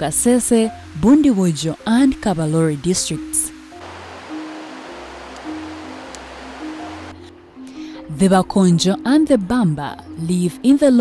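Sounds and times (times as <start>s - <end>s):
slow ambient music with bass: 0.0s - 11.0s
stream rushing over stones: 0.9s - 7.2s.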